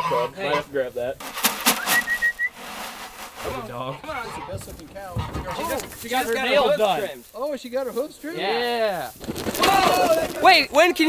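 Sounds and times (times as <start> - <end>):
person whistling a rising note: 1.8 - 2.6.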